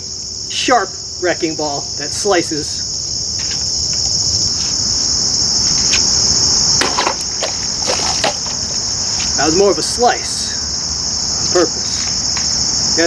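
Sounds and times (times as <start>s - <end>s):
insects chorus: 0.0s - 13.0s
machete slicing plastic bottle: 6.8s - 8.6s.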